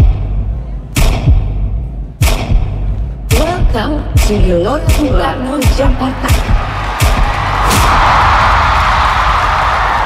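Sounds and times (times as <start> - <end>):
cinematic boom hits: 7.0 - 9.2.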